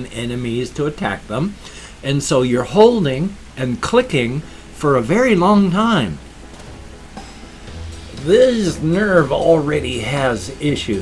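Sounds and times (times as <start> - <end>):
person speaking: 0.0 - 6.3, 8.1 - 11.0
rain hissing: 0.0 - 11.0.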